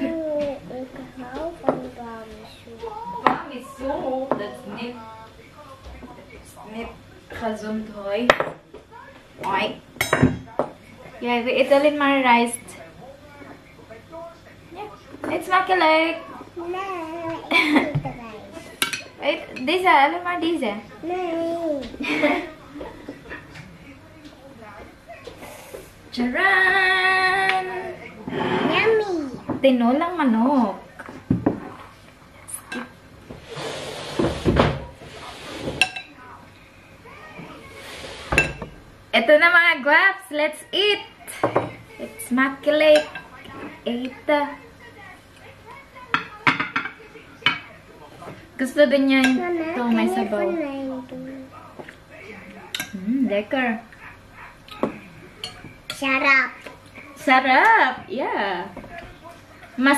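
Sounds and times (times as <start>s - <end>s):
plates and cutlery clinking on table: 8.2s - 8.8s, 9.4s - 11.2s, 17.3s - 20.0s, 22.1s - 23.7s, 27.5s - 29.8s, 31.0s - 31.9s, 32.5s - 36.3s, 37.4s - 38.8s, 41.3s - 41.8s, 42.6s - 44.1s, 46.1s - 50.4s, 52.6s - 53.1s, 54.7s - 56.0s
scraping rustle: 33.4s - 35.8s, 37.5s - 38.4s.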